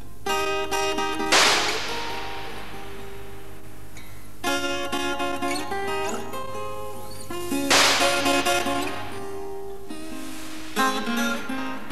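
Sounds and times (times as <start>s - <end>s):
strummed acoustic guitar: 0.0s - 11.9s
loud sharp crack with hiss: 0.2s - 11.9s.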